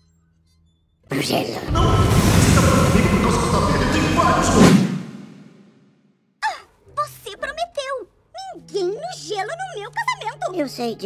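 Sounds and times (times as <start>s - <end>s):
deep rumble: 1.7s - 5.5s
dramatic film music: 1.7s - 5.6s
rushing effects: 1.7s - 5.7s.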